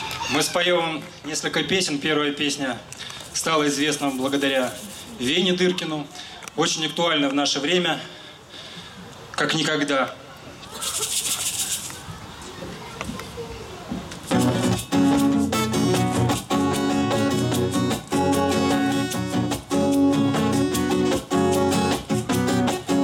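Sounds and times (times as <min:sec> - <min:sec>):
hand shaker rattling: 0:03.2 - 0:05.4, 0:10.7 - 0:12.1, 0:14.2 - 0:16.7
strummed acoustic guitar chords: 0:14.3 - 0:23.0.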